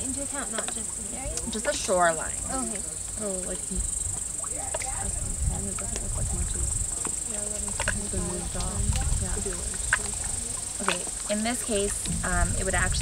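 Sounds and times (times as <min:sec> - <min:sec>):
low rumble: 0:00.0 - 0:13.0
people talking softly: 0:00.0 - 0:13.0.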